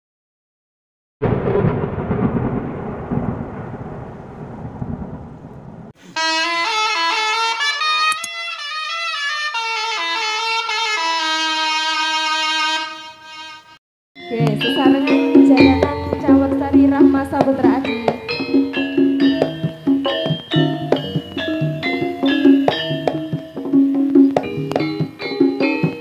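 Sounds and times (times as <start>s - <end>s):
noisy rumble: 1.2s - 6.0s, 15.3s - 20.1s
musical fanfare of held chords: 6.2s - 26.0s.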